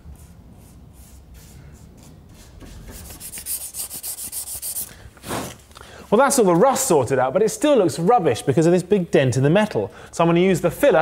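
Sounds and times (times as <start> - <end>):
hand rubbing car metal: 0.2 - 4.9
loud scrape: 0.6 - 5.7.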